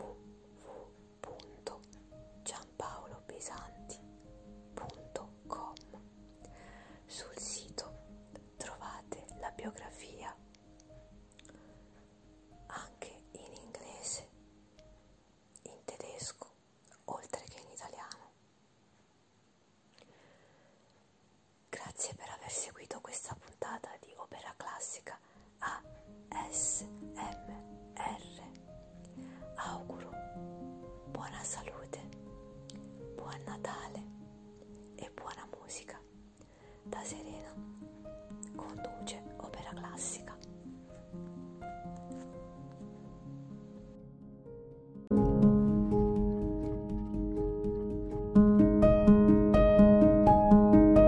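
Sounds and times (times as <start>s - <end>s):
woman whispering: 0.0s - 4.1s, 4.8s - 6.0s, 7.1s - 10.4s, 12.7s - 14.4s, 15.6s - 18.4s, 21.7s - 28.6s, 29.6s - 30.2s, 31.1s - 32.2s, 33.2s - 34.1s, 35.0s - 36.1s, 36.9s - 37.6s, 38.4s - 40.5s
soft music with held notes: 0.0s - 16.2s, 25.3s - 51.0s.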